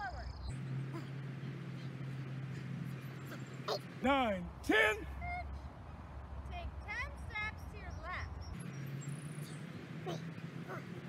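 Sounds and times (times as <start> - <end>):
steady low hum: 0.0 - 11.0
animal calls: 2.7 - 4.0, 9.4 - 11.0.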